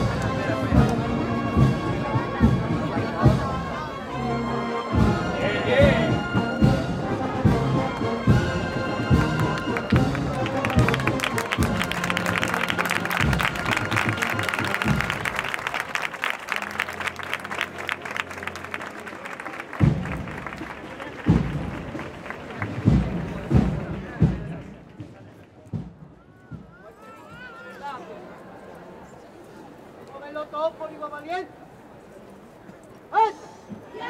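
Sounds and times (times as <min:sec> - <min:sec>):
cornet and drum band march: 0:00.0 - 0:27.5
crowd applause: 0:09.0 - 0:24.9.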